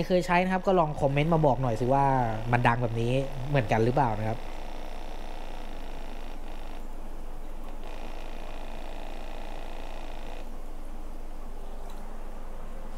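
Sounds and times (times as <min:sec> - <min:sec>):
air pump buzzing: 0:00.0 - 0:10.7.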